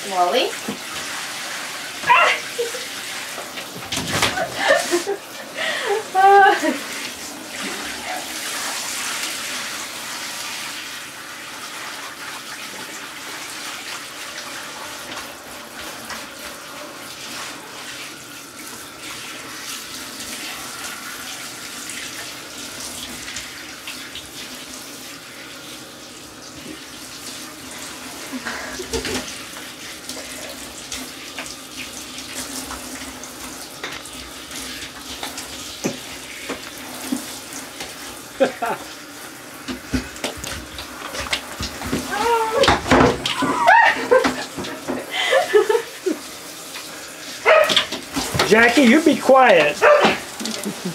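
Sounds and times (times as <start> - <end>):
shower head spraying water: 0.0 - 50.9.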